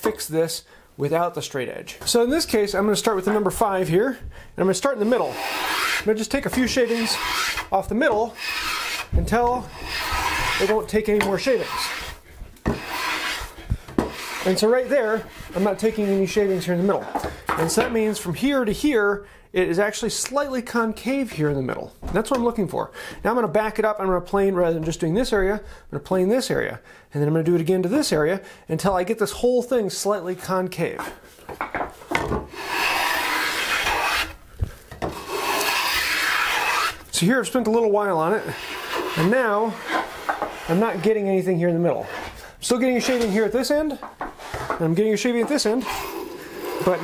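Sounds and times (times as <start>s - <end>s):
hand plane rasping through wood: 5.0s - 9.1s, 9.7s - 16.8s, 32.5s - 34.4s, 35.1s - 37.0s, 38.4s - 41.1s, 45.8s - 47.0s.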